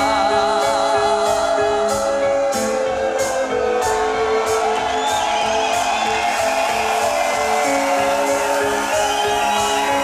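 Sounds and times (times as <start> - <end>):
metal band playing: 0.0 - 10.0
drum and cymbal hits: 1.2 - 10.0.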